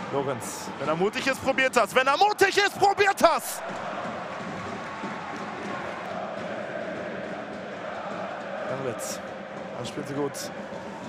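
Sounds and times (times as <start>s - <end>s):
faint massed chanting: 3.2s - 11.0s.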